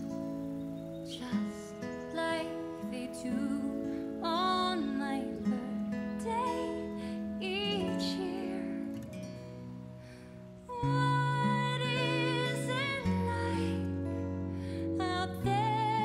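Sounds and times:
acoustic guitar: 0:00.0 - 0:16.0
woman singing: 0:01.1 - 0:09.2, 0:10.6 - 0:14.2, 0:14.8 - 0:16.0.

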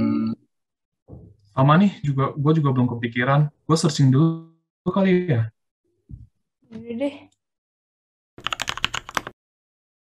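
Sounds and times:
fast typing on keyboard: 0:08.4 - 0:09.4.

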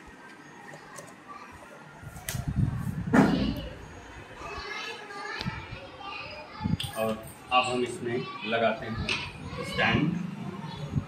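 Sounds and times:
faint children's voices: 0:00.0 - 0:11.0.

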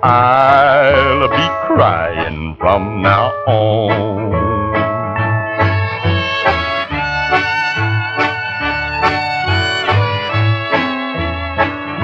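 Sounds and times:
country string band playing: 0:00.0 - 0:12.0.

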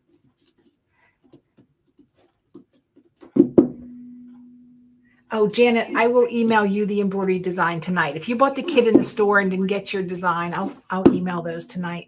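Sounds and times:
soft handling sounds: 0:00.0 - 0:03.4
woman's voice holding a note: 0:05.3 - 0:12.0.

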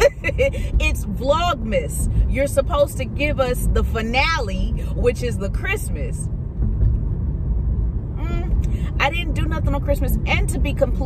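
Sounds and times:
woman's voice: 0:00.0 - 0:06.2, 0:08.2 - 0:11.0
car engine and road rumble: 0:00.0 - 0:11.0.

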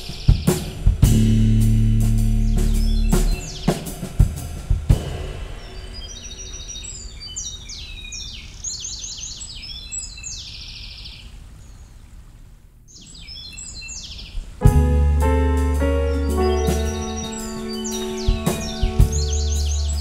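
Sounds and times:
low rumble: 0:00.9 - 0:08.0, 0:14.6 - 0:20.0
birds chirping and trilling: 0:02.5 - 0:04.0, 0:05.4 - 0:12.1, 0:12.9 - 0:14.6, 0:15.8 - 0:20.0.

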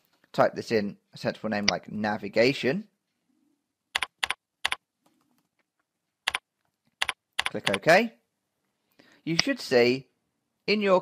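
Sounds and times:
computer keyboard keystroke clicks: 0:04.0 - 0:04.8, 0:07.0 - 0:07.8.

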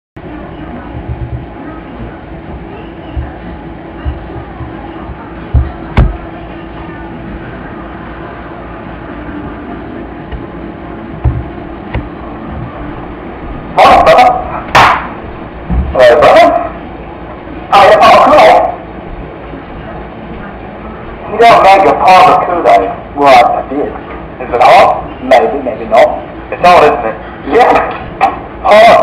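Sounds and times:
steady low hum: 0:00.2 - 0:29.0.

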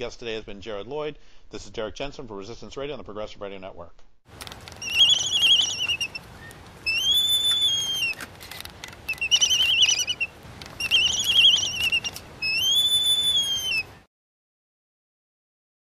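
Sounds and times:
high whistled animal calls: 0:04.8 - 0:08.2, 0:09.1 - 0:14.1.

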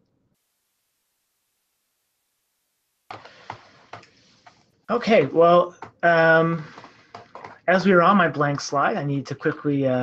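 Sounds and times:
faint background noise: 0:00.0 - 0:10.0
man speaking: 0:04.9 - 0:06.9, 0:07.6 - 0:10.0.

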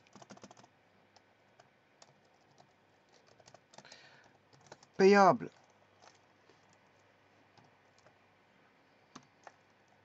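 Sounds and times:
computer keyboard typing: 0:00.0 - 0:08.2, 0:09.1 - 0:10.0.

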